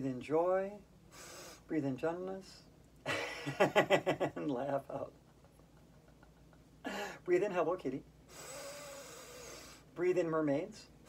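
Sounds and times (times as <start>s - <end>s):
person speaking: 4.2s - 5.3s
person breathing in: 8.3s - 9.9s.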